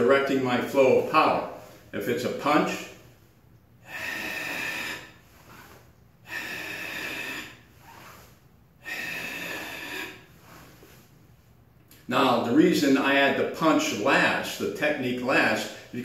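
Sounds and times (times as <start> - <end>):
forceful noisy exhalations: 2.6 - 11.1.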